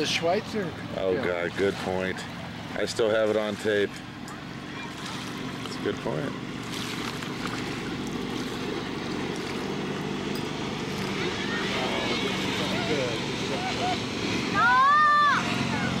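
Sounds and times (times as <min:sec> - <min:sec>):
boat motor running: 0:00.0 - 0:16.0
rush of wind and water: 0:00.0 - 0:16.0
loud yell: 0:14.6 - 0:16.0.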